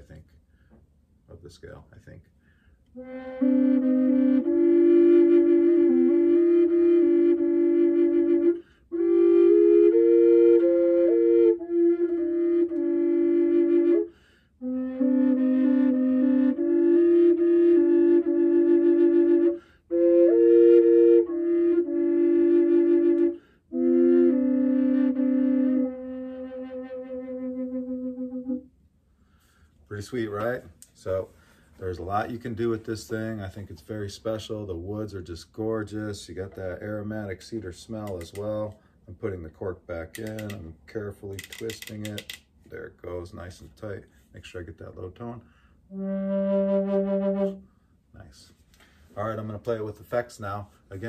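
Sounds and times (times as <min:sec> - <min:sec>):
double drone flute: 0:02.9 - 0:28.7, 0:45.9 - 0:47.7.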